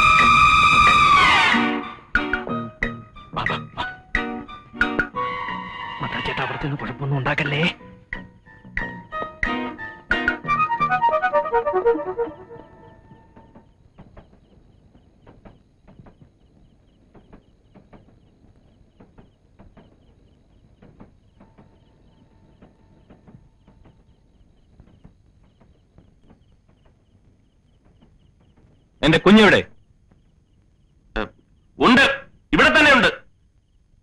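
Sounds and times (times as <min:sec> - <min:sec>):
suspense film score: 0:00.0 - 0:33.8
faint scattered ticks: 0:12.6 - 0:29.2, 0:29.8 - 0:32.6.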